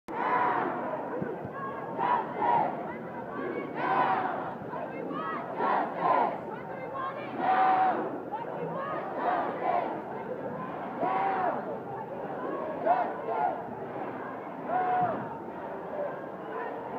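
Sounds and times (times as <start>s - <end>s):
crowd shouting together: 0.1s - 16.9s.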